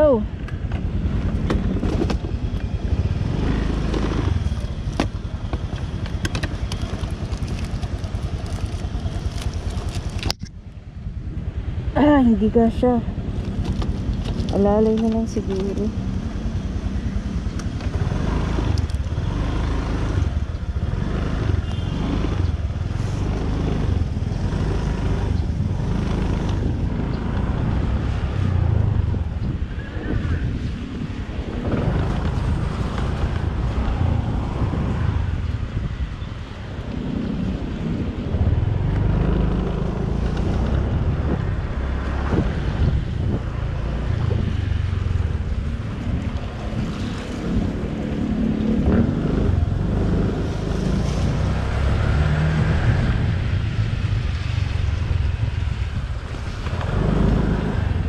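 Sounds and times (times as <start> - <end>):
wind buffeting microphone: 0.0 - 58.0
scooter engine running: 0.8 - 10.3.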